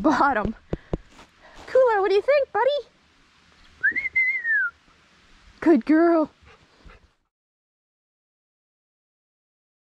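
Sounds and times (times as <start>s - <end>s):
person whistling: 3.8s - 4.8s.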